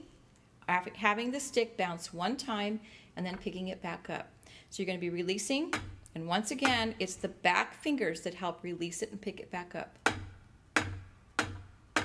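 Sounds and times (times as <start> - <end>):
drumstick tapping practice pad: 5.7 - 7.0, 10.0 - 12.0.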